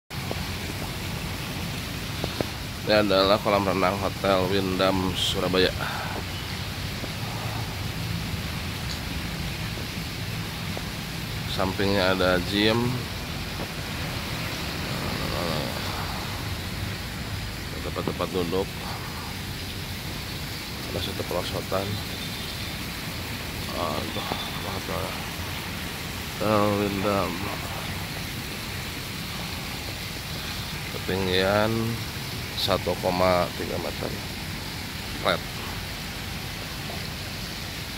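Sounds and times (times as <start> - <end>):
water jets splashing into pool: 0.1 - 37.9.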